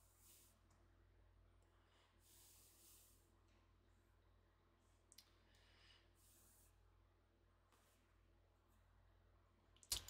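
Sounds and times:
faint hum: 0.0s - 9.8s.

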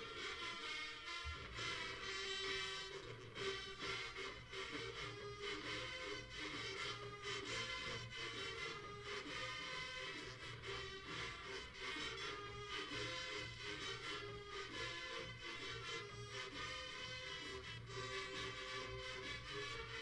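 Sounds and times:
marching band playing brass tune: 0.0s - 20.0s
steady drum beat: 1.2s - 2.0s.

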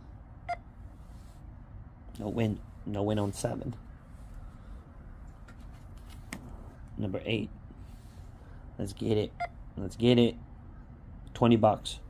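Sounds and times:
faint rustle of card: 5.4s - 7.0s.

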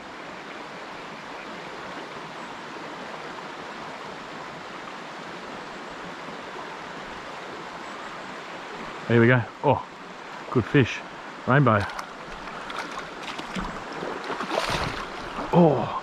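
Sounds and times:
creek water rushing: 0.0s - 16.0s.

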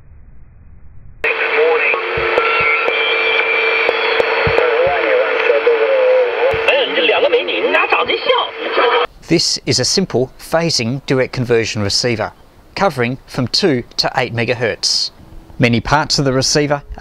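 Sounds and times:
garbled radio voice: 1.2s - 3.4s, 4.1s - 9.1s
shortwave band noise: 1.2s - 9.1s
heterodyne whistles: 2.3s - 4.3s.

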